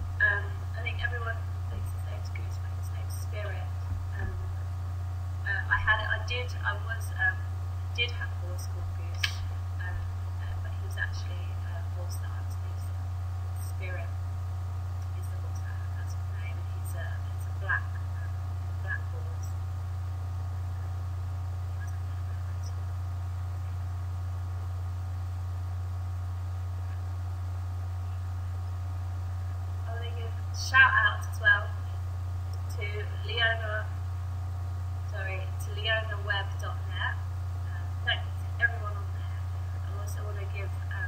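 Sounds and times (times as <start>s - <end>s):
low hum: 0.0s - 41.0s.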